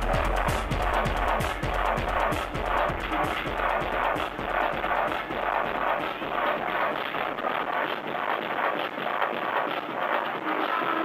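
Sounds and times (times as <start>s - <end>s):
electronic dance music: 0.0s - 11.0s
steady kick drum: 0.0s - 11.0s.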